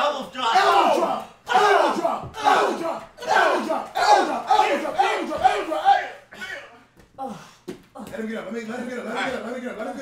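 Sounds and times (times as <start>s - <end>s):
people yelling and hollering: 0.0s - 6.7s.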